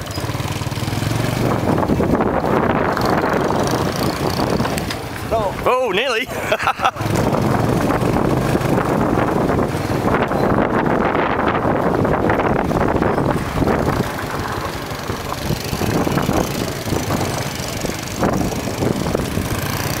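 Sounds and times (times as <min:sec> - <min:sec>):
small motorcycle engine running: 0:00.0 - 0:05.6, 0:06.6 - 0:20.0
wind on microphone: 0:00.0 - 0:20.0.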